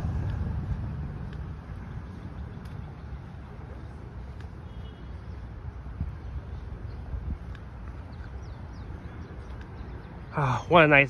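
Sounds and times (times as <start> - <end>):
traffic rumble: 0.0 - 11.0
vehicle passing: 0.0 - 11.0.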